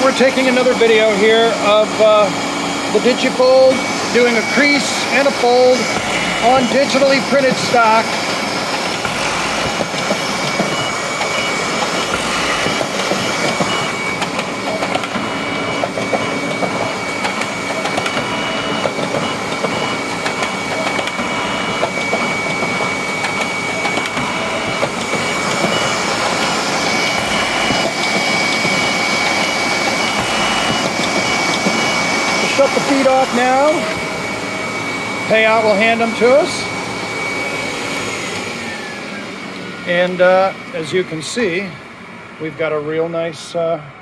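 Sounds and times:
rapid mechanical clatter: 0.0s - 34.2s
folding machine whirring: 0.0s - 42.8s
high machine whine: 0.0s - 44.0s.

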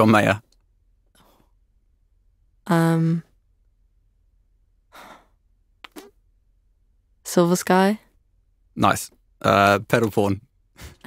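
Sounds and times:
woman sighing: 4.9s - 5.4s.

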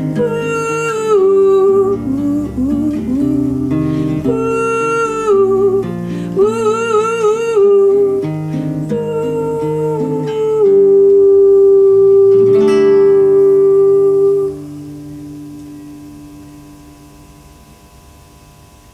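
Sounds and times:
woman singing: 0.0s - 14.7s
plucked classical guitar: 0.0s - 17.5s.

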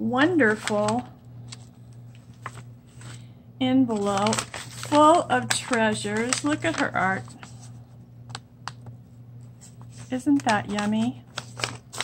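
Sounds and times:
steady low hum: 0.0s - 12.0s
paper envelope handled: 0.4s - 3.3s, 3.9s - 12.0s.

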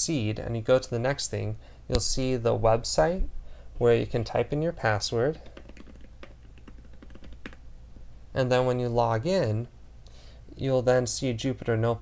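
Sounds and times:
typing on a keyboard: 5.4s - 7.6s.

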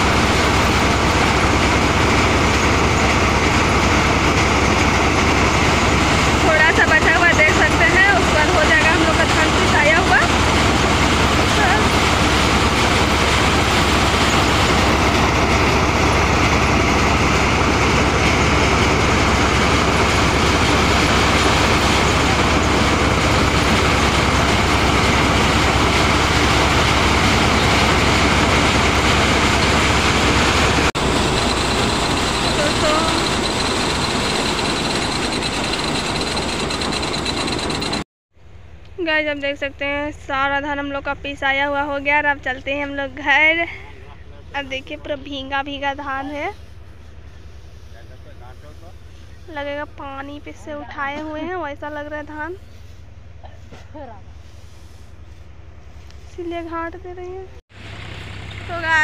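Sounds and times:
thresher machine running: 0.0s - 38.1s.

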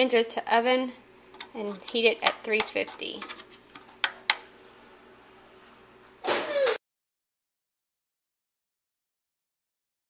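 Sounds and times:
short voice sound: 6.3s - 6.8s.

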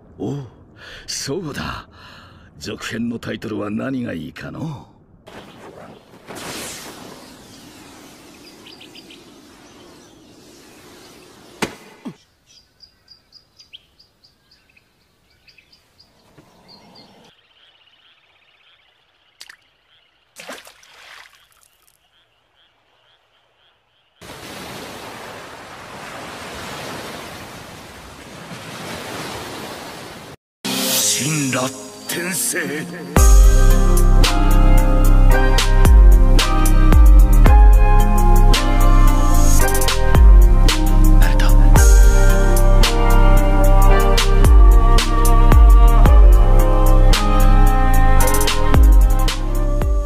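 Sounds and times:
loud even hiss: 6.3s - 12.0s
steady hiss: 6.4s - 12.0s.

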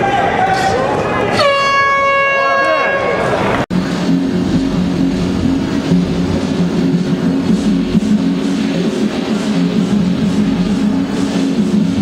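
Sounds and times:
crowd shouting: 0.0s - 3.6s
air horn blast: 1.3s - 3.4s.

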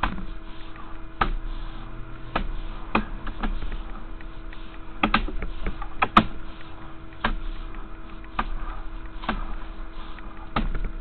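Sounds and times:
sharp clicks and knocks: 0.0s - 1.4s, 2.2s - 11.0s
steady electrical hum: 0.0s - 11.0s.

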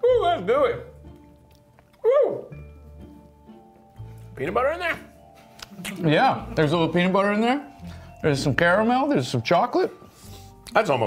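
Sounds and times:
soft background music: 0.0s - 11.0s
person yelping: 2.0s - 2.5s.

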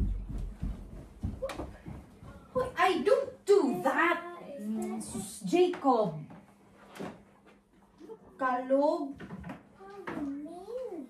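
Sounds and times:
woman's voice: 2.6s - 4.2s, 4.8s - 6.3s.

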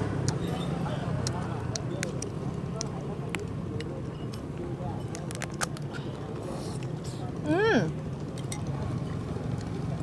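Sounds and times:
faint background chatter: 0.0s - 10.0s
street traffic hum: 0.0s - 10.0s.

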